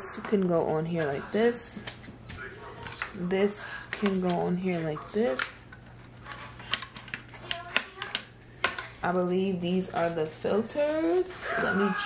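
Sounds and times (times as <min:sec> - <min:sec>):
hard plastic parts clicking: 0:06.3 - 0:09.0.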